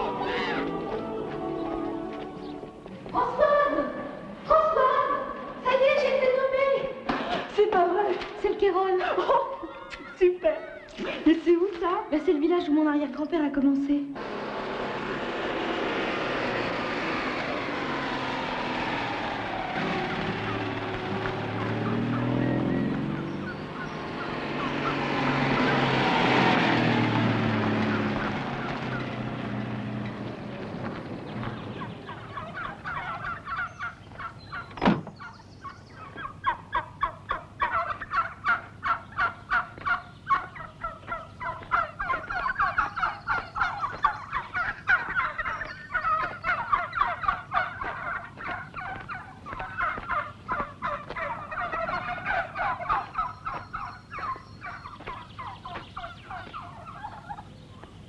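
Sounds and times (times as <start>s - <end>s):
turkeys gobbling: 0.0s - 3.9s, 16.1s - 58.0s.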